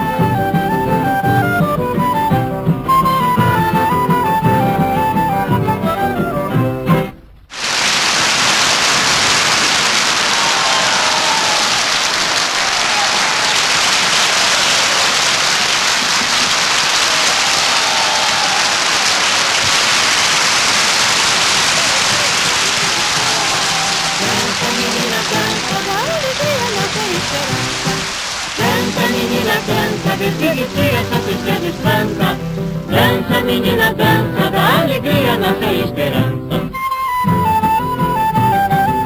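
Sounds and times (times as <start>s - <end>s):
music: 0.0s - 7.4s, 24.2s - 39.0s
audience clapping: 7.5s - 36.2s
voices calling out: 10.2s - 36.7s.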